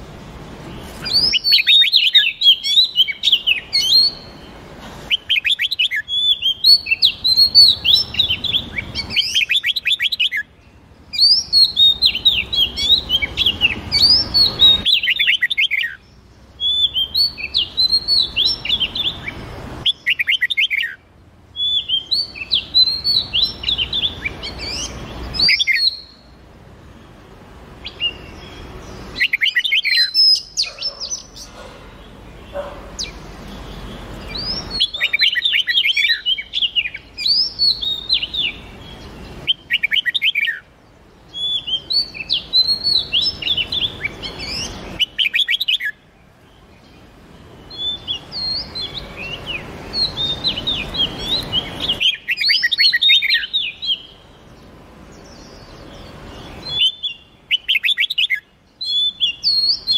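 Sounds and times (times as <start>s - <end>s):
songbird singing: 0.0s - 59.9s.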